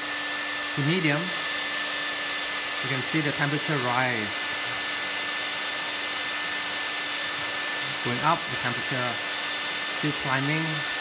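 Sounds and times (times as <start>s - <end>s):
hair dryer running: 0.0s - 11.0s.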